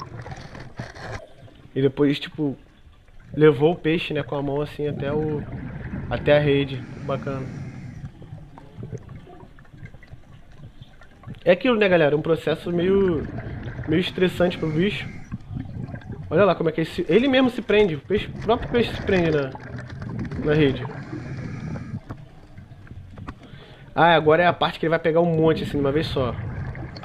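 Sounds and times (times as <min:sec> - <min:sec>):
underwater water wash: 0:00.0 - 0:27.0.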